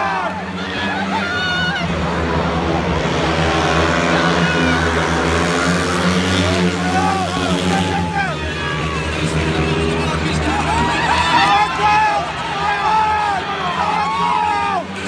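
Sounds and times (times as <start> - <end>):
motorbike engines racing: 0.0 - 15.0
spectators' voices: 0.0 - 15.0.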